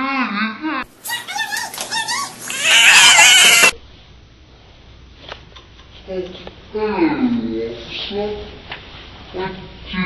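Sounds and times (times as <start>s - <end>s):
wavering animal cries: 1.1s - 3.8s
harsh animal screech: 2.4s - 3.8s.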